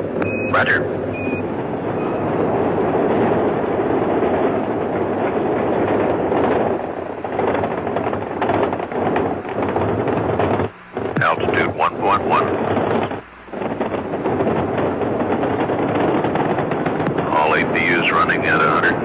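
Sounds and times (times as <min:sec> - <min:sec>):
crackling rocket engine roar: 0:00.0 - 0:19.0.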